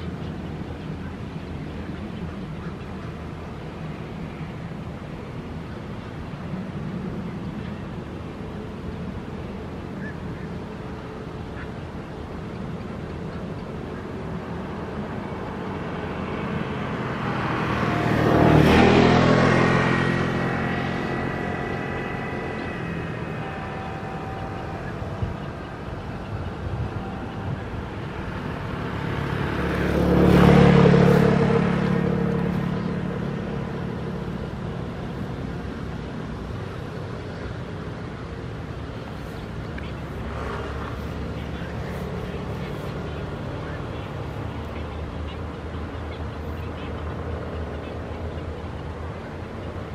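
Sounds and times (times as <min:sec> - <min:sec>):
vehicles driving past: 0:00.0 - 0:49.9.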